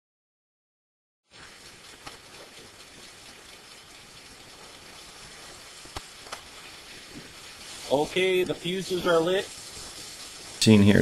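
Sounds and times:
fuses burning with hiss: 1.3s - 11.0s
small pops: 1.4s - 7.8s.

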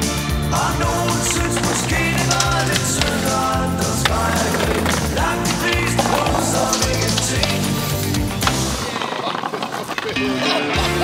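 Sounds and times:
music track: 0.0s - 8.8s
skateboard wheels rolling on paving: 0.0s - 11.0s
skateboard clacks: 0.6s - 11.0s.

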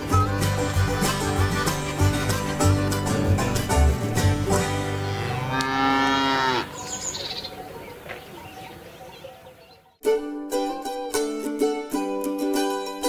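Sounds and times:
plucked-string country music: 0.0s - 5.6s, 10.0s - 13.0s
cow mooing: 4.8s - 6.8s.

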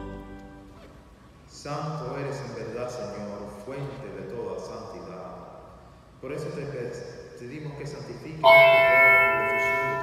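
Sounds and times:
small altar bell ringing: 8.4s - 10.0s.

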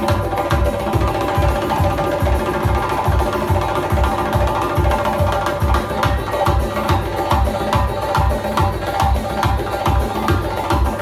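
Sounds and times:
frame drums beating deep rhythm: 0.0s - 11.0s
live band music: 0.0s - 11.0s.

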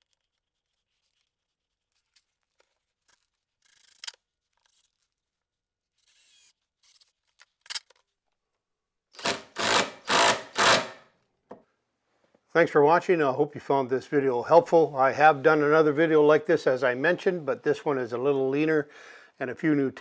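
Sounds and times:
cordless drill bursts into wood: 9.2s - 11.1s.

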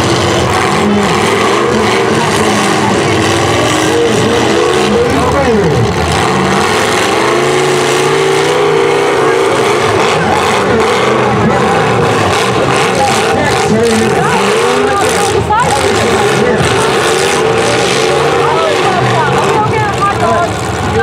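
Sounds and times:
car engines revving hard: 0.0s - 21.0s.

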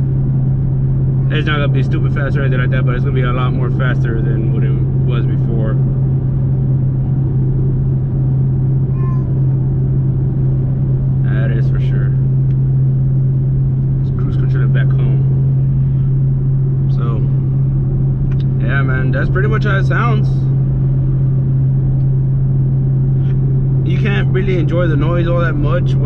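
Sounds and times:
car exhaust drone: 0.0s - 26.0s
road and tyre rumble: 0.0s - 26.0s.

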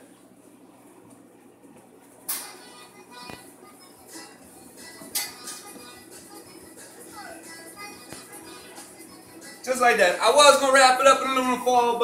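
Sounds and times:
faint background music: 2.2s - 12.0s.

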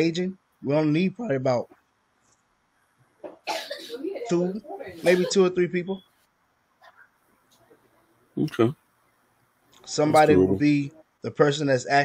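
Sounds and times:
man coughing sharply: 3.5s - 4.1s.

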